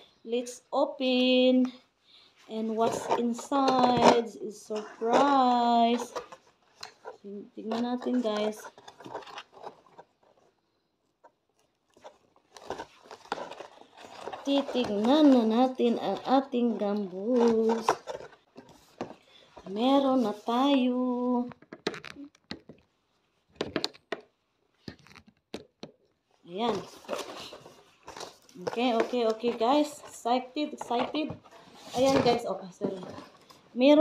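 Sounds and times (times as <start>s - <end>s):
cardboard box rustling: 2.6s - 10.6s, 11.9s - 21.1s, 26.6s - 33.6s.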